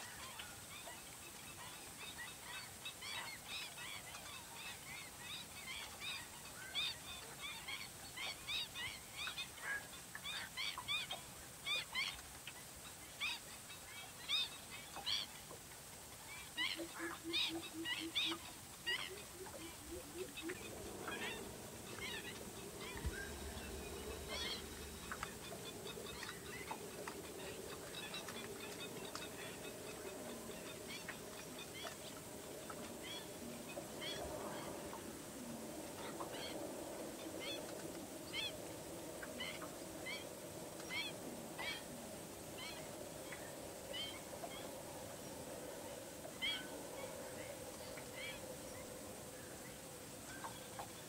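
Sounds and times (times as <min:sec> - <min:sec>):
waterbirds calling: 0:00.0 - 0:51.0.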